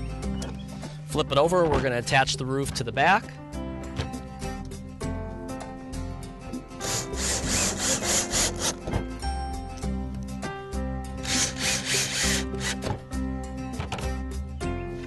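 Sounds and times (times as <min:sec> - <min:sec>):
background music: 0:00.0 - 0:15.0
cordless drill driving screws: 0:06.8 - 0:08.8, 0:11.2 - 0:12.8.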